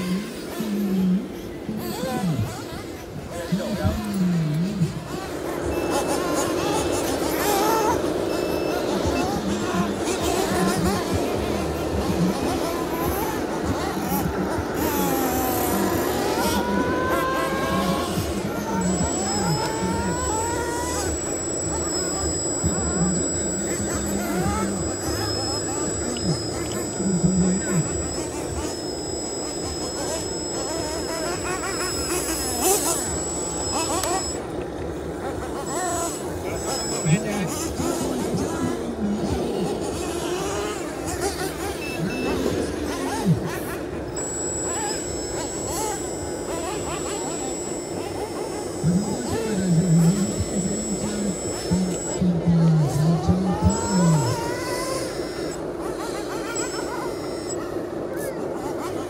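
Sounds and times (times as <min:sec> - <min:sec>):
thin high whine: 0:00.0 - 0:59.0
voices: 0:00.0 - 0:59.0.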